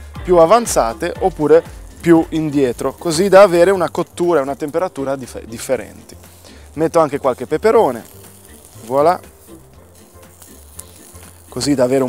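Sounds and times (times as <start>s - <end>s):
vegetables sizzling on griddle: 0.0s - 12.0s.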